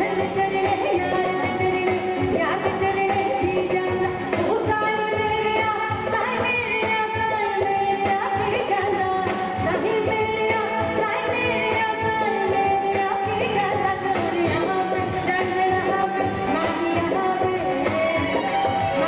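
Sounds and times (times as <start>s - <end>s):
band accompaniment: 0.0s - 19.0s
steady drum rhythm: 0.0s - 19.0s
woman singing into a microphone: 0.0s - 19.0s.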